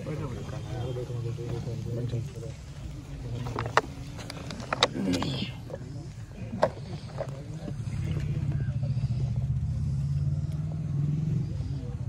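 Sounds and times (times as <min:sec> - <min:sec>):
engine running: 0:00.0 - 0:12.0
faint voices: 0:00.0 - 0:12.0.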